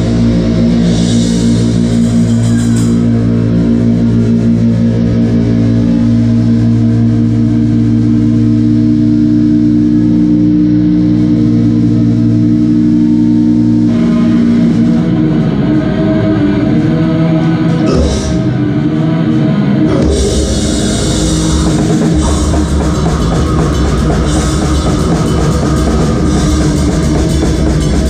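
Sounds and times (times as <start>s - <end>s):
drums and cymbals: 0.0s - 15.1s, 15.7s - 18.6s, 19.9s - 28.0s
distorted electric guitars chord: 0.0s - 28.0s.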